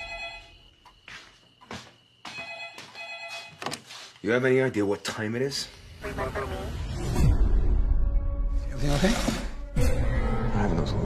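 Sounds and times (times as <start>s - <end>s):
telephone ringing: 0.0s - 0.7s, 2.3s - 3.7s.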